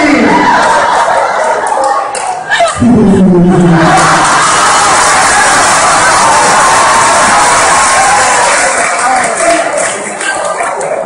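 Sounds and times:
audience cheering and shouting: 0.0s - 10.5s
scattered clapping: 0.6s - 2.4s, 7.1s - 11.0s.

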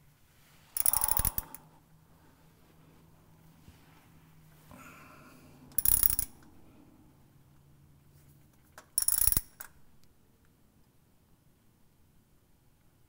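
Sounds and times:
ratcheting wrench clicking: 0.8s - 1.6s, 5.7s - 6.5s, 8.9s - 9.8s.

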